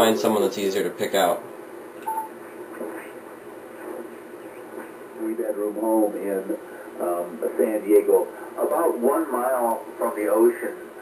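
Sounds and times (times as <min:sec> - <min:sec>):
radio band noise: 0:00.0 - 0:11.0.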